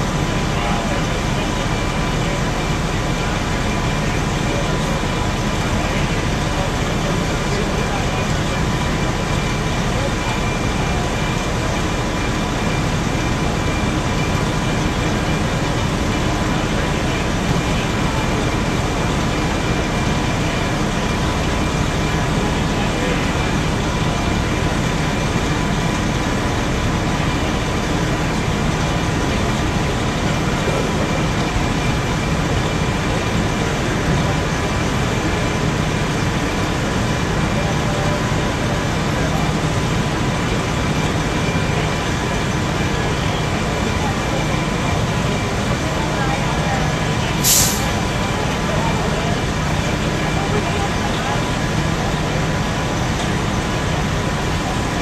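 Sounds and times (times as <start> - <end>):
diesel pump engine droning: 0.0 - 55.0.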